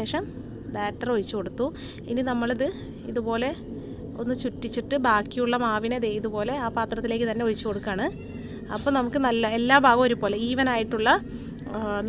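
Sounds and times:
woman speaking: 0.0s - 3.6s, 4.2s - 12.0s
steady high hiss: 0.0s - 12.0s.

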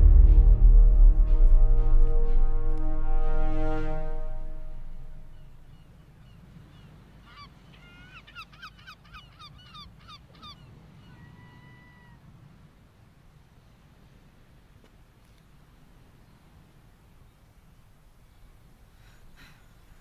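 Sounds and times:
music: 0.0s - 5.6s
low steady rumble: 0.0s - 5.8s.

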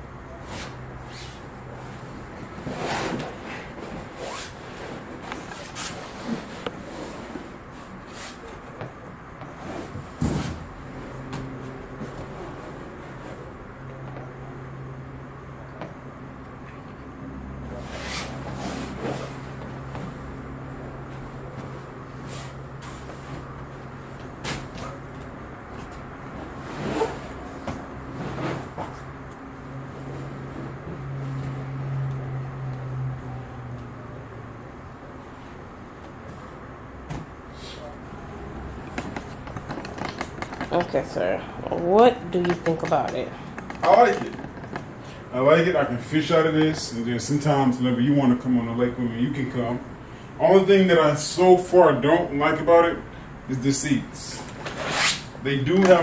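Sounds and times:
inflatable hull rubbing and creaking: 0.4s - 7.7s, 26.3s - 29.0s
thump on inflatable tubes: 8.8s - 10.7s, 37.0s - 37.4s
vinyl kayak hull creaking: 38.9s - 41.1s.

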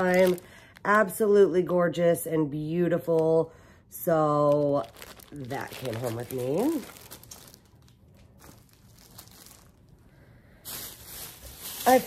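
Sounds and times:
plastic package crinkling: 0.0s - 1.0s, 4.4s - 12.0s.

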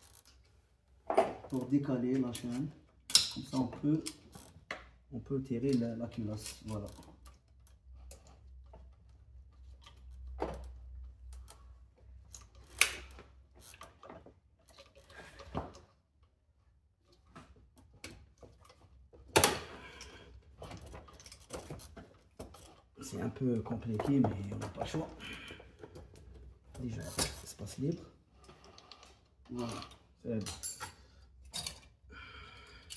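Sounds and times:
metallic clicks of hand tools: 2.4s - 4.3s.

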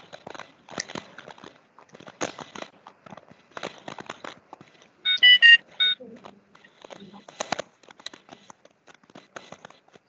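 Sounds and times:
rapid irregular clicks and taps: 0.0s - 10.0s.

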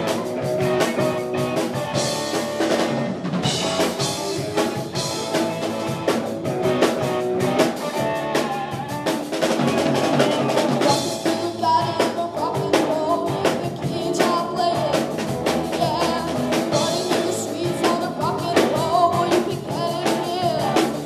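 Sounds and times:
bass guitar: 0.0s - 21.0s
drum kit beat: 0.0s - 21.0s
electric guitars: 0.0s - 21.0s.

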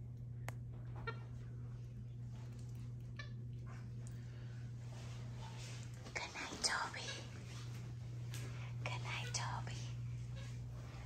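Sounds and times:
steady low hum: 0.0s - 11.0s
person whispering softly: 6.1s - 7.3s, 8.8s - 10.0s.

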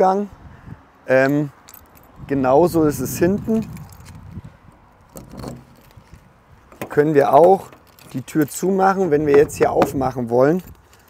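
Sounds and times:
faint handling noise: 3.4s - 11.0s.

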